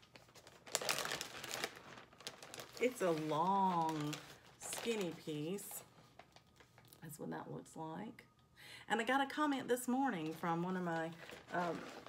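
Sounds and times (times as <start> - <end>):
fabric crinkling rustle: 0.0 - 6.9, 10.1 - 12.0.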